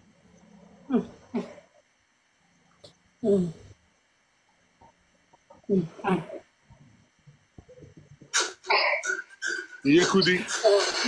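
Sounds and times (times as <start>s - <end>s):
person's voice: 9.9s - 10.8s.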